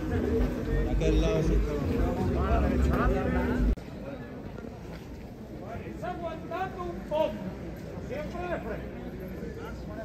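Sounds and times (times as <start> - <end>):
low street background noise: 0.0 - 10.0.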